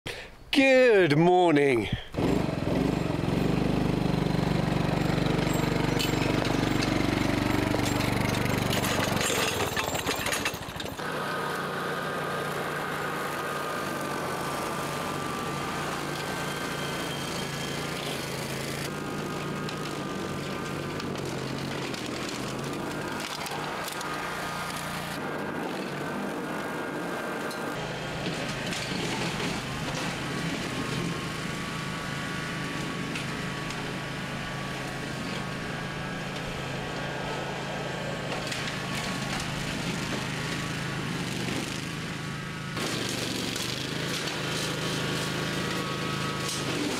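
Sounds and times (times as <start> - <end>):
lawn mower engine running: 2.1 - 46.9.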